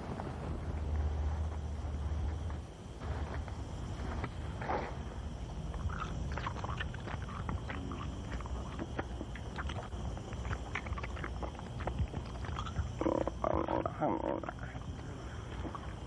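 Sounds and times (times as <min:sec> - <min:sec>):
low steady rumble: 0:00.0 - 0:16.0
growling voice: 0:12.6 - 0:15.0.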